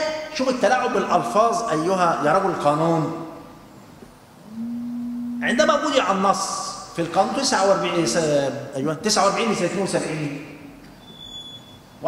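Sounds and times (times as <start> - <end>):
man's drawn-out hesitation sound: 4.5 - 6.2
man speaking: 5.4 - 10.4.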